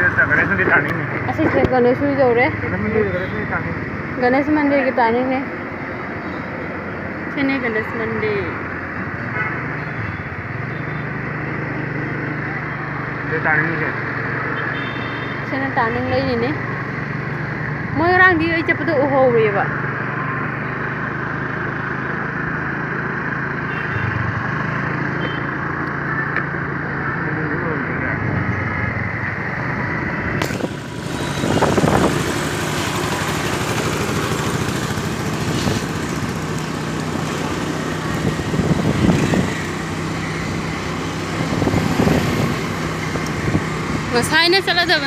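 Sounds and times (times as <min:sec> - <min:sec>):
motorcycle engine running: 0:28.8 - 0:45.0
wind on microphone: 0:30.6 - 0:32.4, 0:38.1 - 0:39.7, 0:41.3 - 0:44.1.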